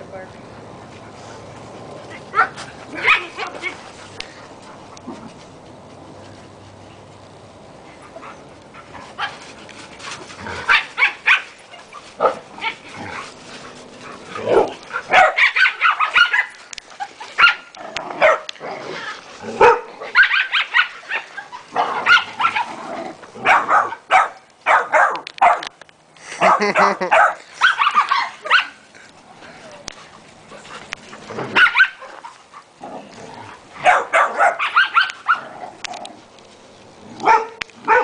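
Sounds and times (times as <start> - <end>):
dogs barking and yipping: 2.0 - 5.0, 8.0 - 25.8, 26.4 - 28.9, 30.5 - 32.8, 33.5 - 36.0, 37.2 - 38.0.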